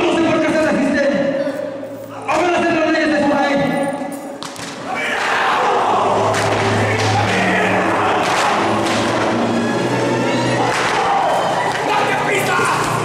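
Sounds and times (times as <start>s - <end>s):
voices: 4.9s - 13.0s
music: 5.1s - 13.0s.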